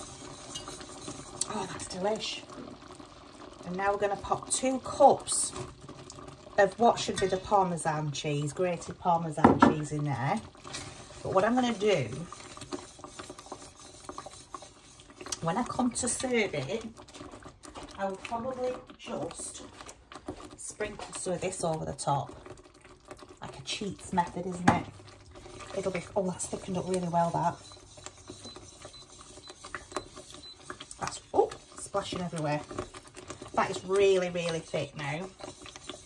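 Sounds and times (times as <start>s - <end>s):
whisk rubbing in sauce: 0.0s - 2.9s, 10.2s - 36.0s
whisk wires ticking on pot: 0.0s - 36.0s.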